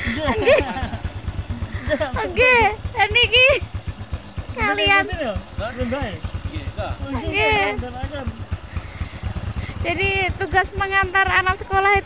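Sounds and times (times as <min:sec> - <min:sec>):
small motorcycle engine running: 0:00.0 - 0:12.0.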